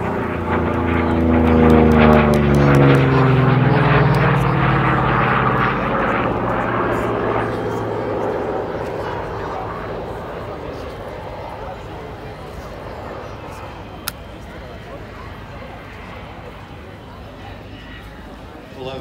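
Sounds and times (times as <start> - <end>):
propeller aircraft flying past: 0.0 - 19.0.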